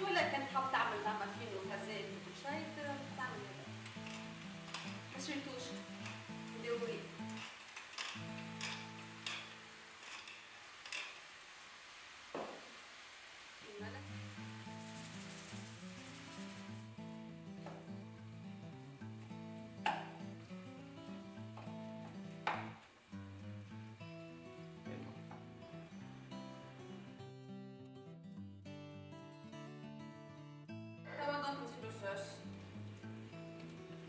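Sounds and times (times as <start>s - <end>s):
onions sizzling in a frying pan: 0.0s - 27.1s, 31.7s - 34.0s.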